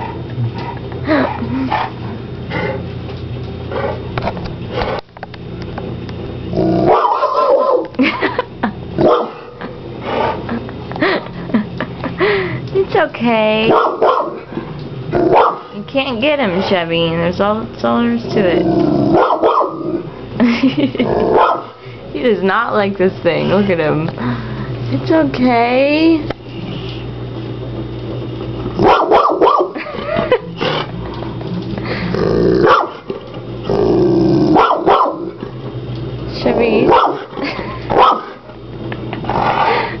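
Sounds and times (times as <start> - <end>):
dog growling and barking: 6.4 - 8.1, 8.9 - 10.7, 13.7 - 15.8, 18.3 - 21.8, 28.7 - 35.5, 36.4 - 38.5, 39.1 - 40.0
dog barking: 6.9 - 7.9, 9.0 - 9.4, 13.7 - 14.5, 15.3 - 15.8, 19.1 - 19.8, 21.3 - 21.7, 28.8 - 29.8, 32.6 - 33.0, 34.6 - 35.3, 36.9 - 37.3, 37.9 - 38.4.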